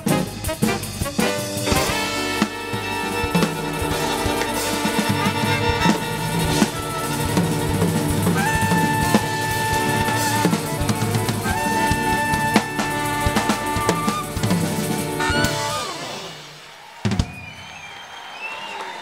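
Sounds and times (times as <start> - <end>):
drum kit and percussion: 0.0 - 19.0
bowed violin melody: 1.8 - 16.0.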